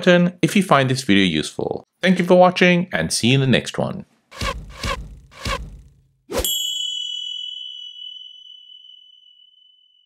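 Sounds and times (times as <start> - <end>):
bright bell-like ding: 6.4 - 10.0.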